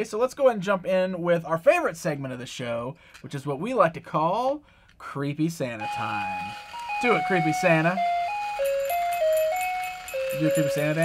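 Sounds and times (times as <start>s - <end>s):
electronic christmas melody: 5.8s - 11.0s.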